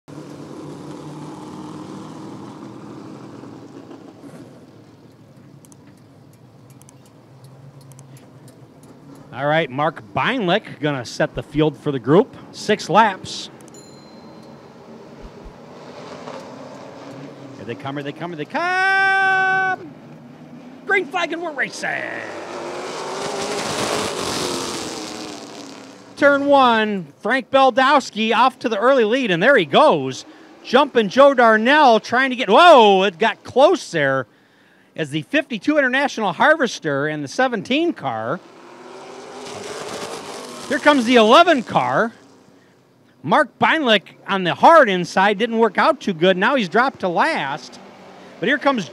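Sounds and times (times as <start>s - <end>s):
race car engines running: 0.1s - 34.0s, 37.6s - 42.8s, 43.4s - 48.9s
faint clicks: 5.0s - 9.3s.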